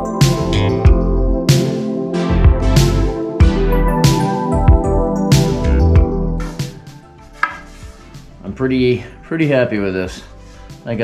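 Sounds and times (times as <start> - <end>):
background music: 0.0 - 11.0
wooden knocks: 7.4 - 7.8.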